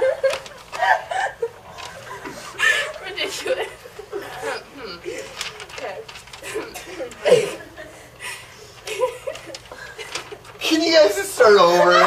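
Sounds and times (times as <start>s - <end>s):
girls laughing and giggling: 0.0s - 10.6s.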